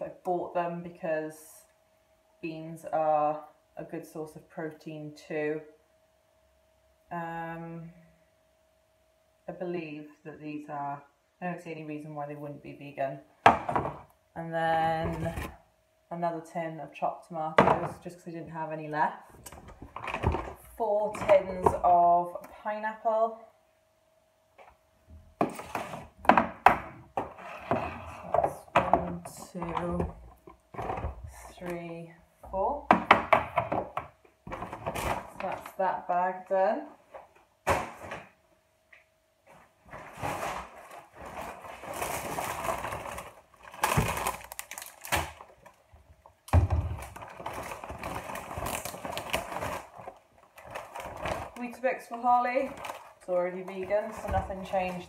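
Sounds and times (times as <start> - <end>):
plastic bag rustling: 34.5 - 35.8, 39.4 - 55.0.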